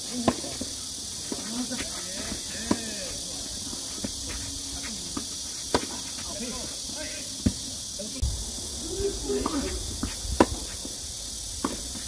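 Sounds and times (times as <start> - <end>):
steady high hiss: 0.0 - 12.0
tennis racket hitting ball: 5.1 - 6.3, 9.4 - 10.9
low rumble: 8.2 - 11.6.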